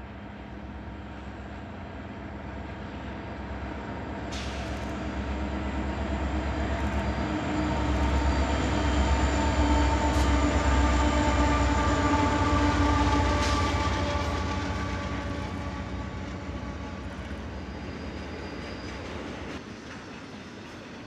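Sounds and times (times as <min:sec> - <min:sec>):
locomotive engine drone: 0:00.0 - 0:20.4
train wheels rumbling on rails: 0:00.0 - 0:21.0.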